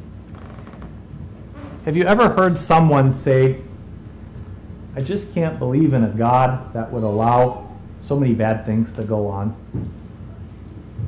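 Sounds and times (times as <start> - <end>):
low electrical buzz: 0.0 - 11.0
man speaking: 1.9 - 9.6.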